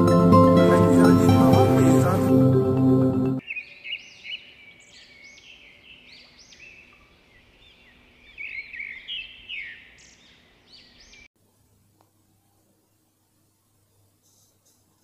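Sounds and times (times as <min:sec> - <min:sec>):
intro music: 0:00.0 - 0:03.4
birds chirping: 0:01.3 - 0:11.3.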